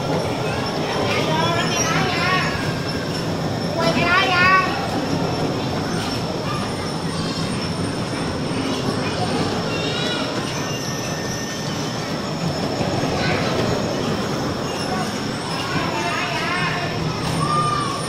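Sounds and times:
bumper cars rolling rumble: 0.0s - 18.0s.

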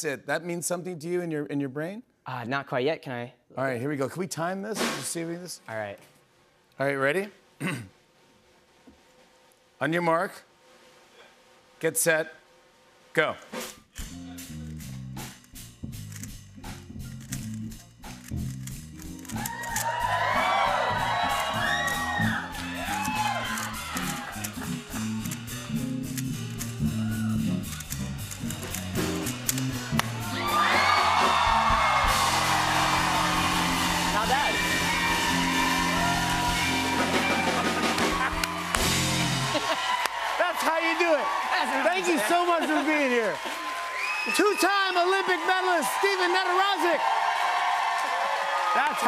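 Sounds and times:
band music with stepping bass: 13.6s - 39.6s
puzzle cube clicking: 17.0s - 19.9s, 27.6s - 30.1s
audience whooping and cheering: 19.2s - 25.5s, 26.6s - 28.0s, 28.6s - 49.0s
applause: 19.7s - 24.1s, 30.0s - 49.0s.

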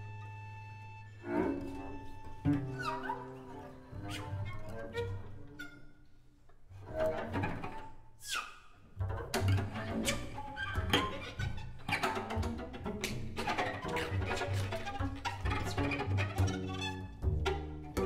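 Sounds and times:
improvised bowed string music: 0.0s - 18.0s.

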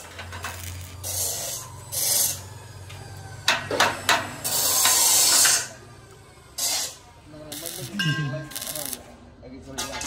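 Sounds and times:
welding arc crackling and sizzling: 0.0s - 2.6s, 6.6s - 9.1s.

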